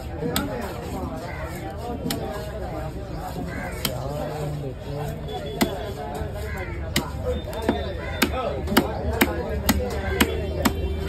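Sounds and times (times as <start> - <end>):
cleaver chopping on wooden block: 6.9 - 11.0.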